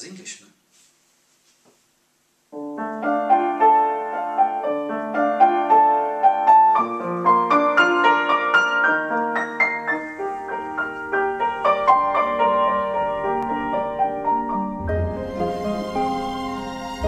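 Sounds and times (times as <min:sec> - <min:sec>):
upright piano playing: 0:02.6 - 0:17.0.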